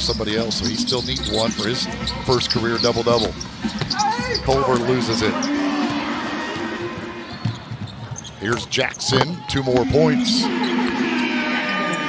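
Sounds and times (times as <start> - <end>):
arena background noise: 0.0 - 12.0.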